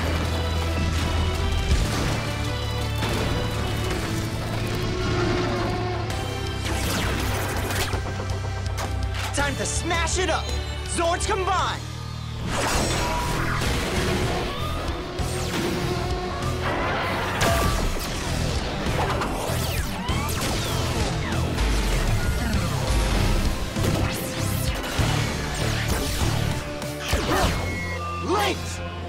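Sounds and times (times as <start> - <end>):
driving action music: 0.0 - 29.0.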